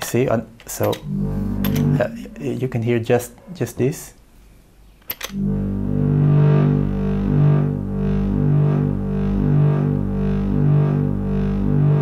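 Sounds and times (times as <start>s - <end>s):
distorted synthesizer drone: 1.0s - 3.0s, 5.3s - 12.0s.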